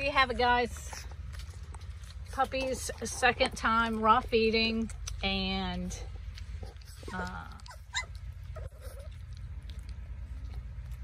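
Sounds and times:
steady low hum: 0.0 - 11.0
puppies whimpering and squeaking: 6.6 - 9.3.

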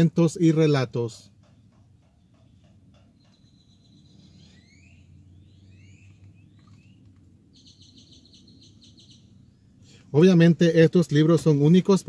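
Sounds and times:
low steady hum: 0.0 - 12.0
bird chirping: 1.2 - 10.0
high bird trill: 1.4 - 9.8.

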